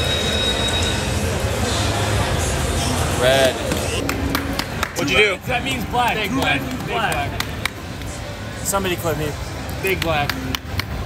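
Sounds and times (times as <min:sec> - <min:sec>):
casino background noise: 0:00.0 - 0:11.0.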